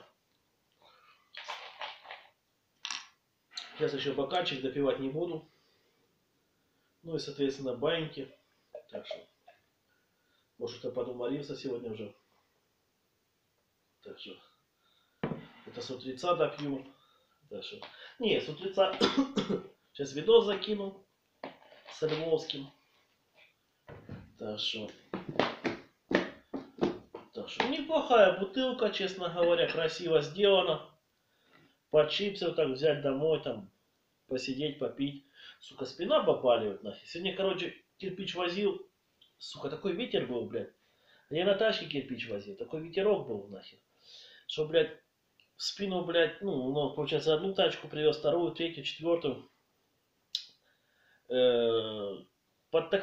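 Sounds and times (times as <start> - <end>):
plastic bottle crackling: 1.4 - 3.0, 24.9 - 27.9
bottle screw cap twisting: 1.4 - 3.7.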